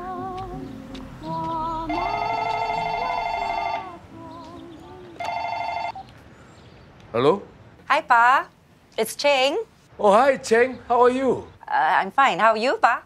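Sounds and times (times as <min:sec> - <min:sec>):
soft music: 0:00.0 - 0:05.7
telephone ringing: 0:01.9 - 0:04.0, 0:05.2 - 0:06.0.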